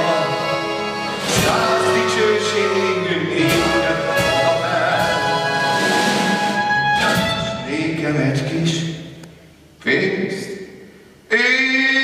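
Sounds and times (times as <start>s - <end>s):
accordion: 0.0s - 7.6s
clarinet: 0.0s - 7.6s.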